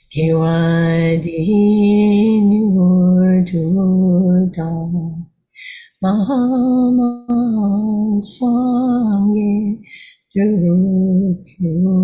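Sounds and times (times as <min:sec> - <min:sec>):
woman chanting: 0:00.0 - 0:12.0.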